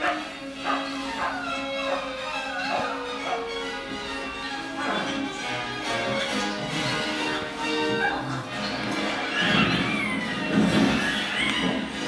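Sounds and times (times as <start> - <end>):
sliding high-pitched call: 0.0 - 5.8
film soundtrack music: 0.0 - 12.0.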